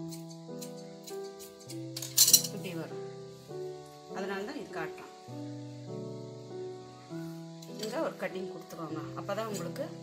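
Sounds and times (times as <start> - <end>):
soft piano music: 0.0 - 10.0
scissors metallic clink: 0.1 - 2.6.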